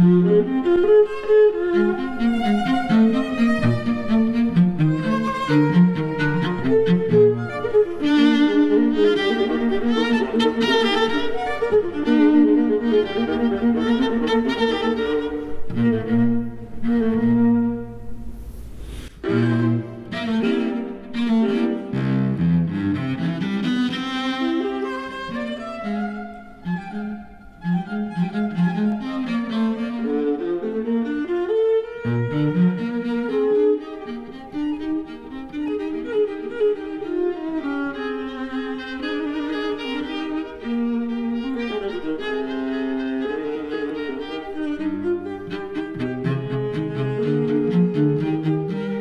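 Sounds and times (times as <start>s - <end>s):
cello and violin duet: 0.0s - 49.0s.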